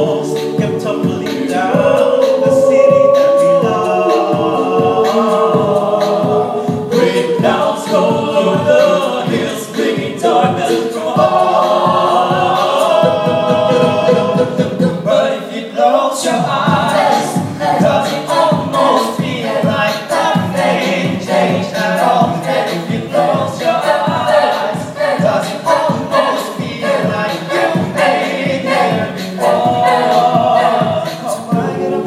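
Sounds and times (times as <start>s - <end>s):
vocal group singing chords: 0.0s - 32.0s
vocal percussion beat: 0.0s - 32.0s.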